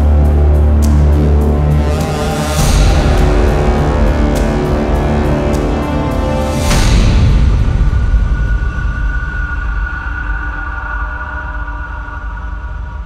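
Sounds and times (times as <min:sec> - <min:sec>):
deep rumble: 0:00.0 - 0:13.0
heavy low hit: 0:00.0 - 0:13.0.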